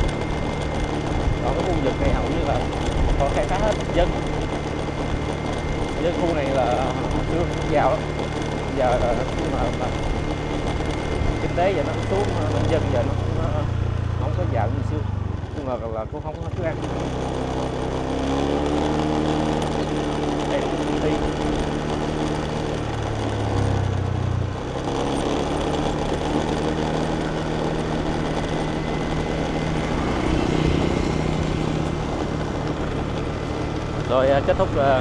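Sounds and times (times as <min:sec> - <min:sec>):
road and wind noise: 0:00.0 - 0:35.0
scooter engine running: 0:00.0 - 0:35.0.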